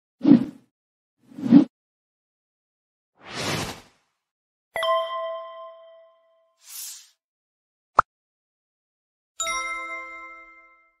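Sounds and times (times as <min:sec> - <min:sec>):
notification bell chime: 0:04.8 - 0:06.4.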